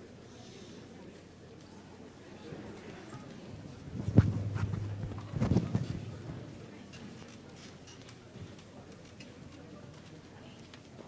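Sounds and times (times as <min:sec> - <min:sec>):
audience rustling: 0:02.8 - 0:07.6.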